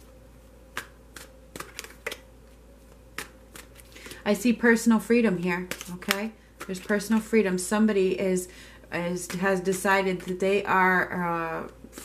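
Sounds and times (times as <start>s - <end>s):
faint steady hum: 0.0s - 12.0s
cards being shuffled: 0.7s - 4.2s, 5.6s - 7.3s.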